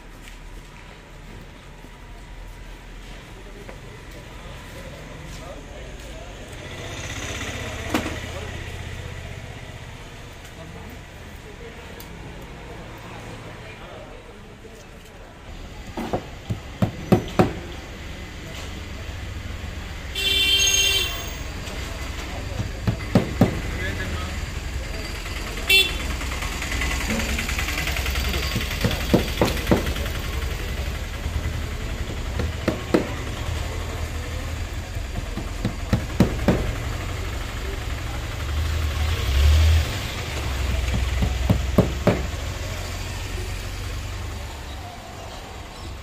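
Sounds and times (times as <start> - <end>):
low rumble of street traffic: 0.0 - 46.0.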